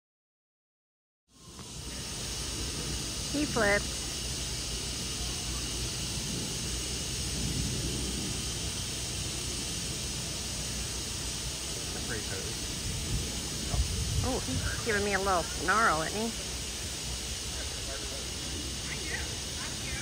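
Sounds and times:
outdoor background hiss: 1.3s - 20.0s
faint low murmur: 1.4s - 8.4s, 11.7s - 20.0s.

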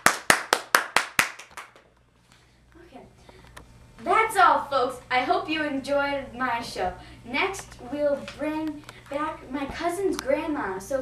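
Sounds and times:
person clapping hands: 0.0s - 1.9s.

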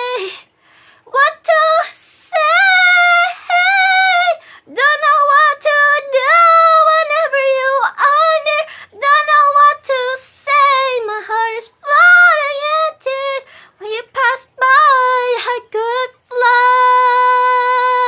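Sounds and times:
woman singing unaccompanied: 0.0s - 18.0s.

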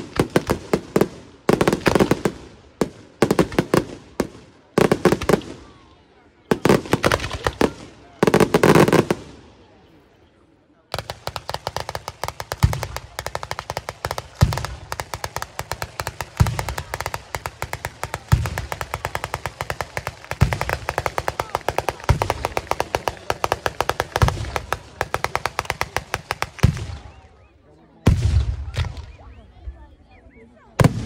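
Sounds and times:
fireworks cracking: 0.0s - 5.6s, 6.5s - 9.4s, 11.0s - 27.2s
fireworks deep boom: 28.1s - 29.2s.

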